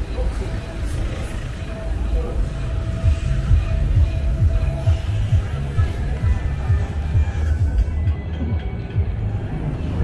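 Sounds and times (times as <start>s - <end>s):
faint music: 0.0s - 10.0s
low street rumble: 0.0s - 10.0s
voices: 0.0s - 10.0s.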